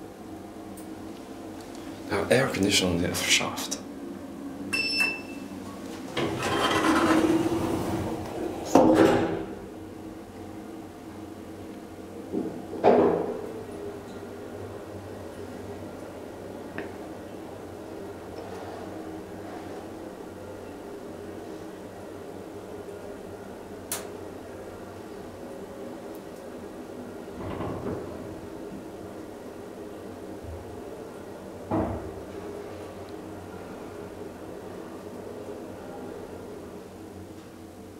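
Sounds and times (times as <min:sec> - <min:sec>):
elevator steady hum: 0:00.0 - 0:37.9
elevator door sliding rumble: 0:05.7 - 0:09.8, 0:12.2 - 0:37.4.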